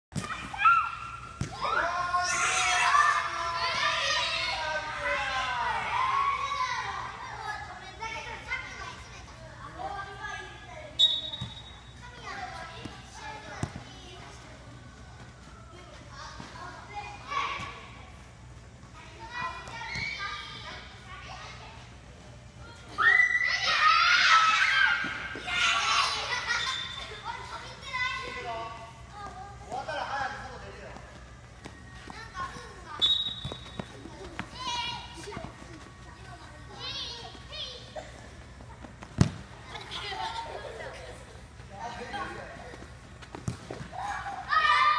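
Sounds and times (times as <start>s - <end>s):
ball kicked thumps: 39.0s - 39.5s, 43.3s - 43.9s
children calling out: 43.9s - 44.9s.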